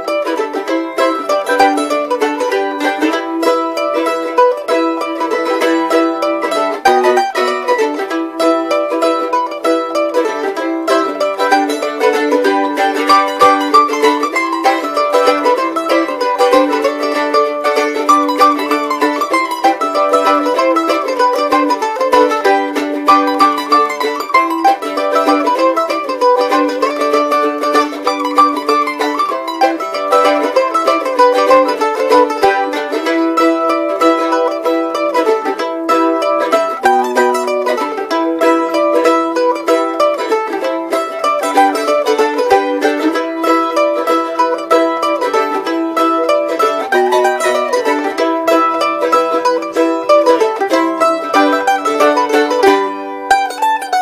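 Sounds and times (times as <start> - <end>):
mandolin picking fast melody: 0.0 - 54.0.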